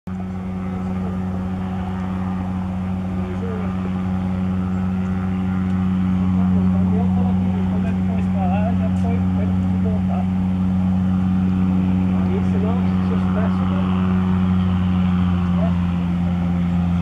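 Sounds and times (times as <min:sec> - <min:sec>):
low engine drone: 0:00.0 - 0:17.0
faint voices: 0:00.2 - 0:05.6.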